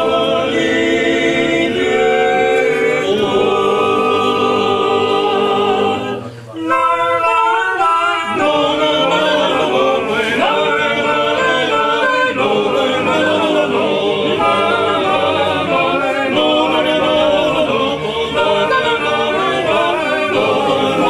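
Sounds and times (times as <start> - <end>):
men singing a cappella: 0.0 - 21.0.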